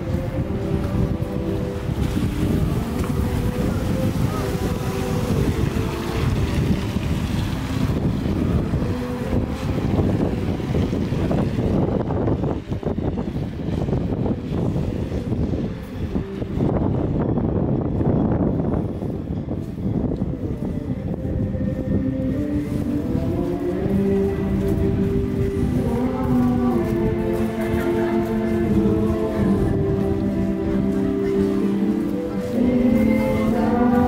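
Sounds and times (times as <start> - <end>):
cars on wet street: 0.0 - 34.0
faint music: 0.0 - 34.0
wind buffeting microphone: 0.0 - 34.0.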